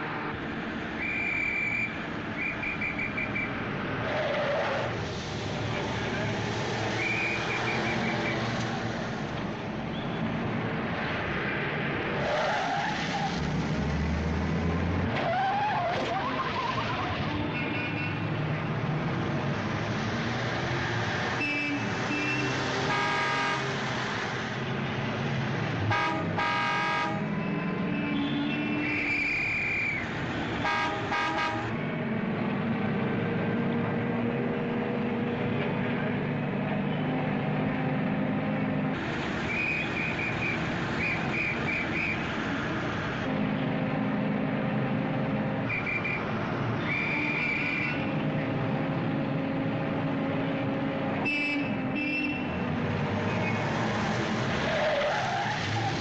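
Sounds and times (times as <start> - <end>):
rumble of car engines: 0.0 - 56.0
car horns honking: 21.4 - 23.8, 25.9 - 29.2, 30.5 - 31.8, 51.2 - 52.6.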